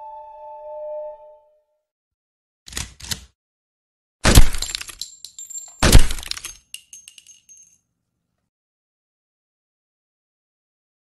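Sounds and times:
glass smashing: 4.3s - 7.7s
glass shards clinking: 4.4s - 7.8s.

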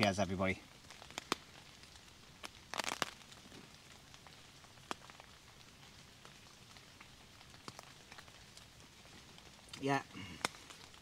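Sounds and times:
rain on tent roof: 0.0s - 11.0s.

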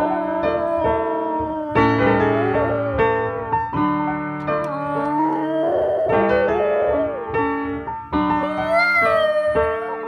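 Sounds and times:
dog howling: 0.0s - 3.8s, 4.5s - 7.4s, 8.4s - 10.0s
piano chords: 0.0s - 10.0s.

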